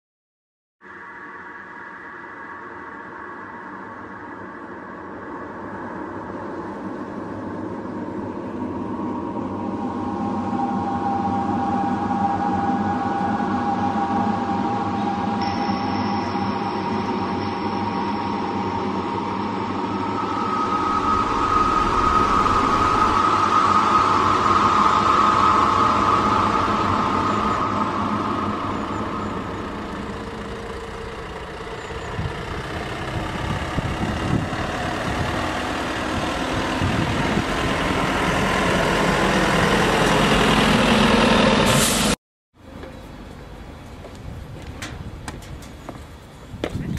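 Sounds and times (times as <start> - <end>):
sustained whine: 0.8 - 44.2
minibus engine and road noise: 0.8 - 46.9.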